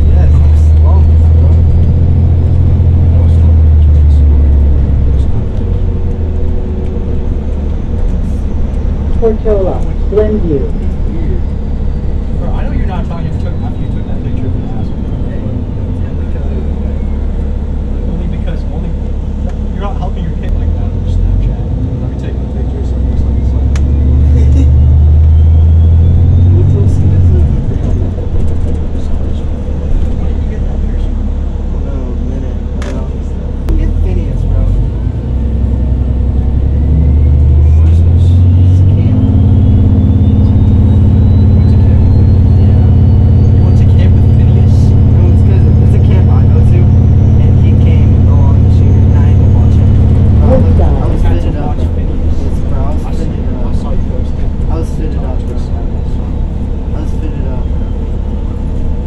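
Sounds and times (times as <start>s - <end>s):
bus diesel engine droning: 0.0s - 59.0s.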